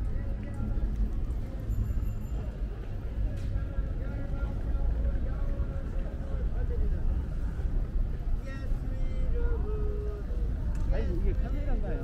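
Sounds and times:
crowd chatter: 0.0s - 12.0s
traffic rumble: 0.0s - 12.0s.

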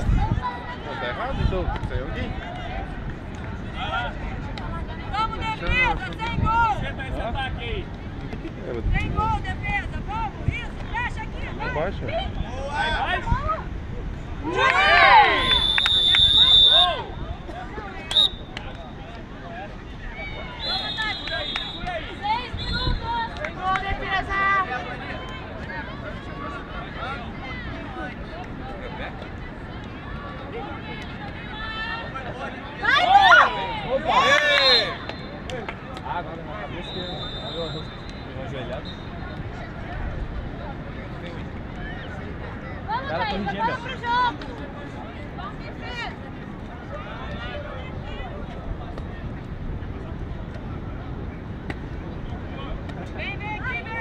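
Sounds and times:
people shouting and calling out: 0.0s - 7.9s, 8.8s - 41.0s, 41.6s - 49.3s, 52.6s - 54.0s
wind rumble on microphone: 0.0s - 14.7s
people calling out: 14.4s - 18.8s, 20.0s - 26.8s, 30.1s - 35.6s.

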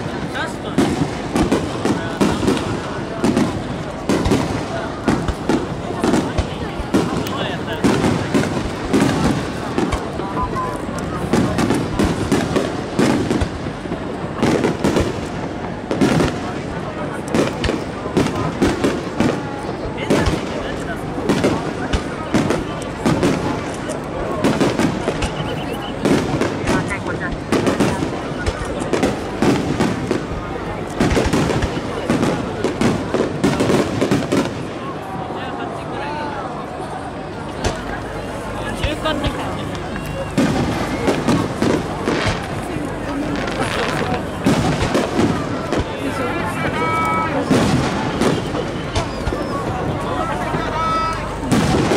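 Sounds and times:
people's voices: 0.0s - 51.9s.

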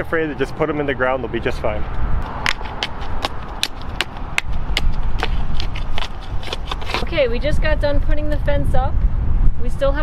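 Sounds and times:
wind rumble on microphone: 1.4s - 10.0s.

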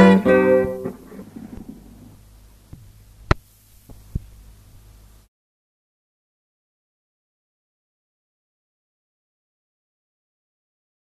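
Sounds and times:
low electrical hum: 0.0s - 5.3s.

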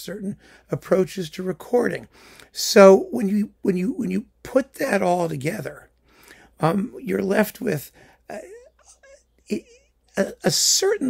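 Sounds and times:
man speaking hesitantly: 6.6s - 11.0s.

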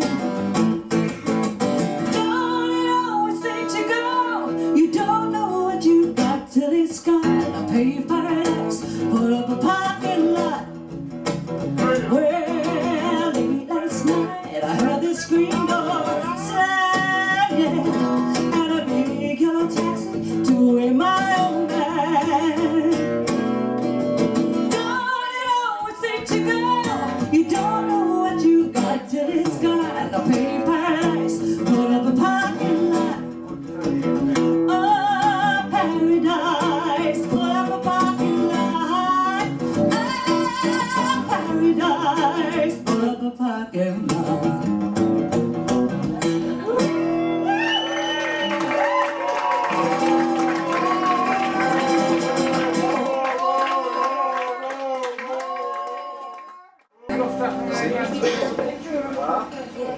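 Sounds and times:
strummed acoustic guitar: 0.0s - 47.5s, 49.8s - 53.4s, 57.0s - 58.9s
woman singing: 2.0s - 10.9s, 11.7s - 23.4s, 24.6s - 45.2s.

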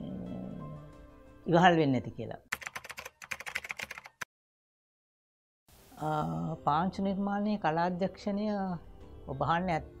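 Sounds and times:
keyboard typing clicks: 2.6s - 4.3s.

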